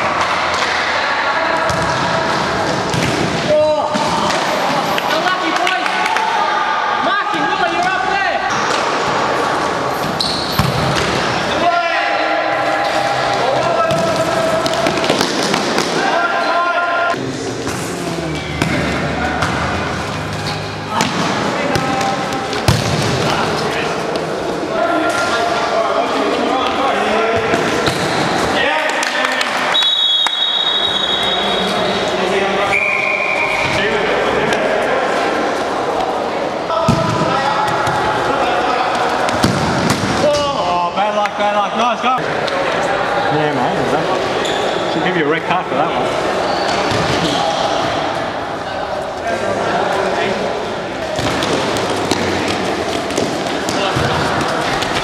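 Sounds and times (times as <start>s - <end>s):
players calling out: 0.0s - 55.0s
ball kicked and bouncing on hard court: 1.7s - 2.0s, 21.0s - 23.4s.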